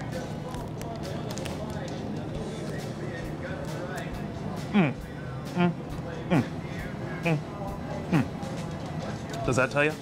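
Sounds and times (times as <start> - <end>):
indistinct background chatter: 0.0 - 9.7.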